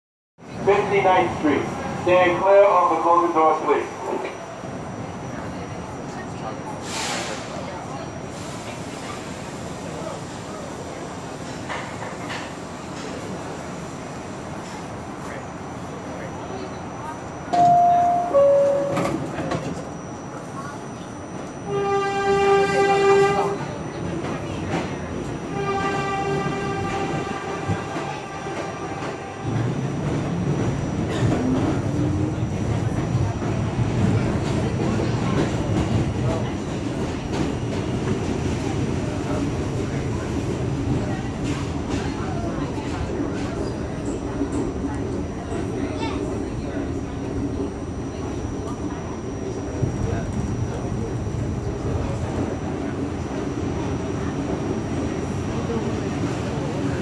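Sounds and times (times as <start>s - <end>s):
subway train motors rumbling: 0.4s - 57.0s
two-tone subway door chime: 17.4s - 21.7s
train horn blowing: 21.6s - 23.6s, 25.5s - 29.7s.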